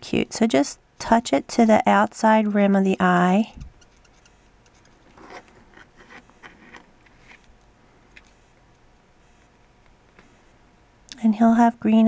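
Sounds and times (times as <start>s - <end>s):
marker nib ticking on metal: 3.6s - 5.0s.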